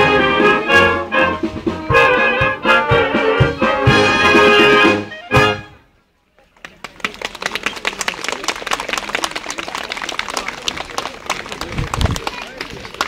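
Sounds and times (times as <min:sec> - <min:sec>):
people talking: 0:06.2 - 0:13.0
audience clapping: 0:06.4 - 0:13.0.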